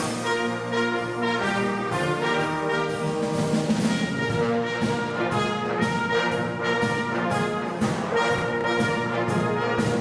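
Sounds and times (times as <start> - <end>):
wind band of saxophones and brass: 0.0 - 10.0.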